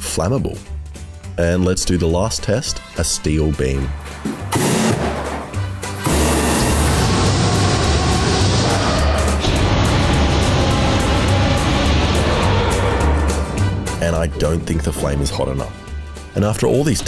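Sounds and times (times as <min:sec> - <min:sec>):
flamethrower rushing hiss: 0:05.9 - 0:14.1.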